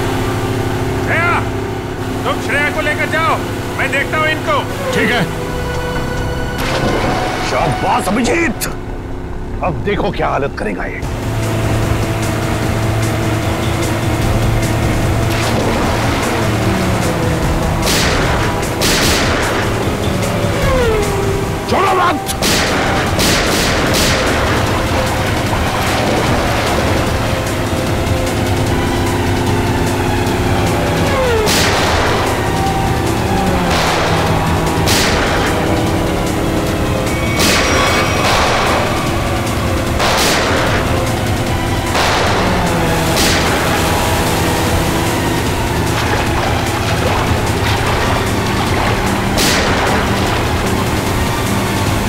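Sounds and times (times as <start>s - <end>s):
dramatic music of held tones: 0.0s - 52.0s.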